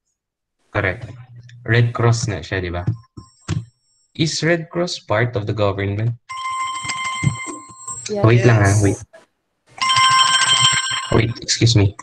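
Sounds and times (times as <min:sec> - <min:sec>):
telephone ringing: 0:06.3 - 0:08.7, 0:09.8 - 0:11.8.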